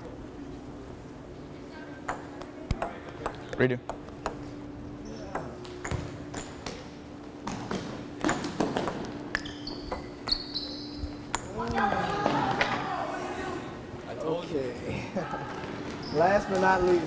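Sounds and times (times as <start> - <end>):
ping pong ball clicking: 2.0 - 4.4, 8.2 - 10.4, 11.3 - 11.8.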